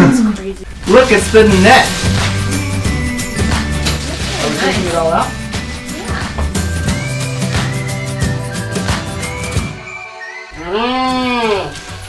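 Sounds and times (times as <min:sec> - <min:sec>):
background music: 0:00.7 - 0:12.0.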